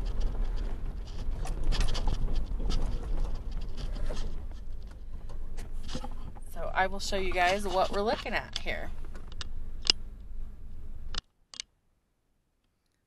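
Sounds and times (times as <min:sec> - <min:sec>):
truck engine rumble: 0:00.0 - 0:11.2
crackles and knocks: 0:00.0 - 0:11.3.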